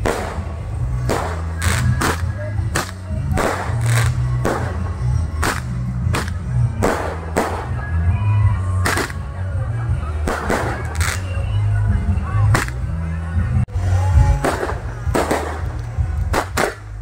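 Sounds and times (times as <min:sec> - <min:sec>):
fireworks exploding: 0:00.0 - 0:08.0, 0:08.8 - 0:09.3, 0:10.2 - 0:11.5, 0:14.2 - 0:17.0
loud music with heavy bass: 0:00.0 - 0:17.0.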